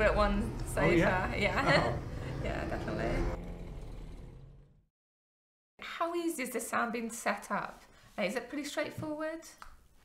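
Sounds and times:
low rumbling sound: 0:00.0 - 0:04.9.

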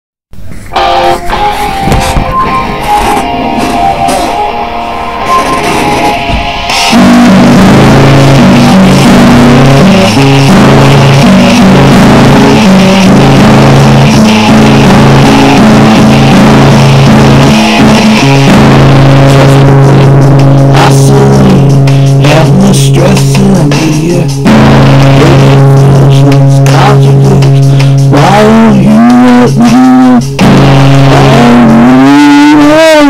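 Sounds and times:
distorted hard rock music: 0:00.4 - 0:33.0.

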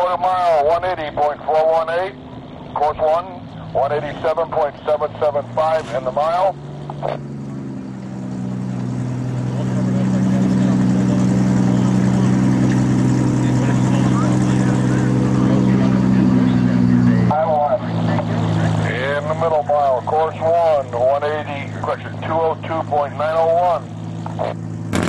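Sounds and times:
voice over public-address speaker: 0:00.0 - 0:07.2, 0:13.4 - 0:24.6
car engine running: 0:00.0 - 0:25.0.

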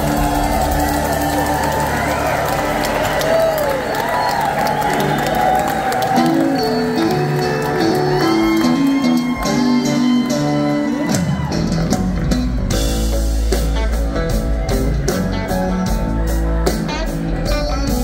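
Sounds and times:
live rock band playing: 0:00.0 - 0:18.0
bending lead guitar notes: 0:04.9 - 0:18.0.

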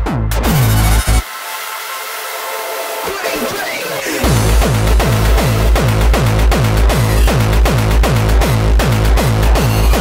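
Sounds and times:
synth breakdown: 0:00.2 - 0:10.0
distorted kick drums pounding: 0:04.2 - 0:10.0.

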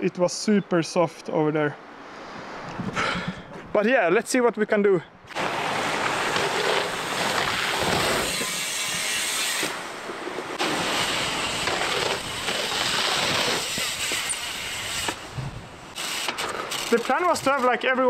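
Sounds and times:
wind buffeting microphone: 0:02.3 - 0:03.8, 0:10.0 - 0:15.9.

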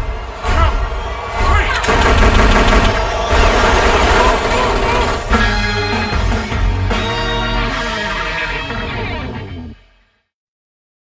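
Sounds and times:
dramatic music: 0:00.0 - 0:09.8
rapid gunfire: 0:01.4 - 0:05.4.

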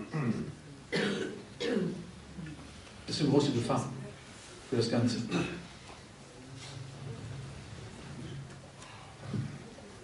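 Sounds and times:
person coughing: 0:00.1 - 0:02.0, 0:05.3 - 0:05.7.

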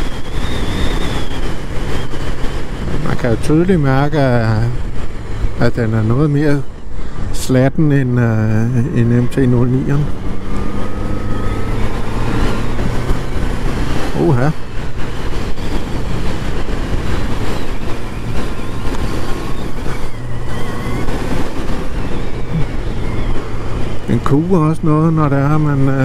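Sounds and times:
motorcycle engine humming: 0:00.0 - 0:26.0
wind and road noise: 0:00.0 - 0:26.0.

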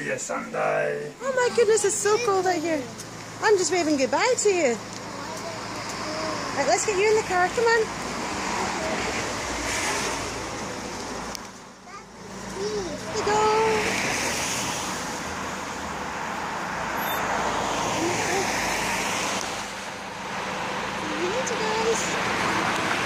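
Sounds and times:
rushing outdoor noise: 0:00.0 - 0:23.0
woman's voice: 0:01.2 - 0:04.8, 0:06.6 - 0:07.9, 0:13.1 - 0:13.9, 0:17.9 - 0:18.6, 0:21.0 - 0:22.2.

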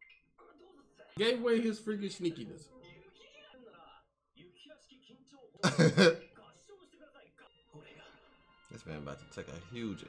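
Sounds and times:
faint dialogue: 0:00.2 - 0:10.0
man laughing: 0:05.6 - 0:06.2.

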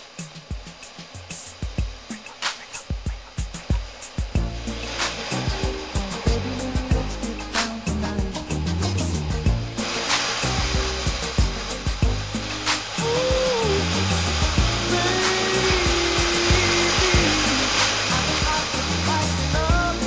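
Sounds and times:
dense noisy backing: 0:00.0 - 0:20.0
gliding melody notes: 0:04.4 - 0:20.0.

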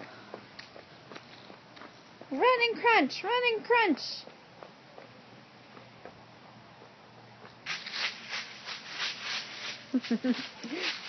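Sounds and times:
footsteps crunching dry leaves: 0:07.6 - 0:11.0.

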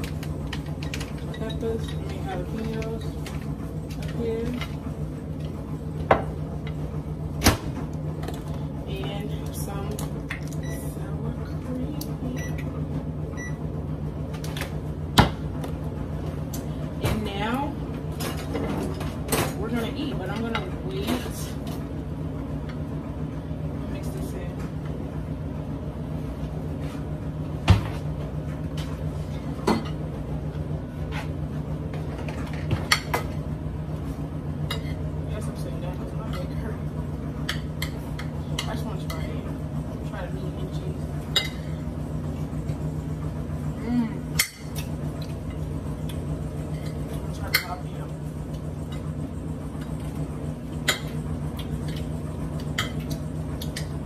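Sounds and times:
kitchen appliance humming: 0:00.0 - 0:54.0.

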